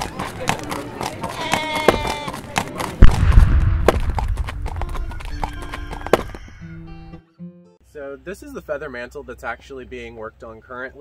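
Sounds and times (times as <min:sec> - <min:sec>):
cannon boom: 0:03.0 - 0:05.2
music: 0:05.0 - 0:08.7.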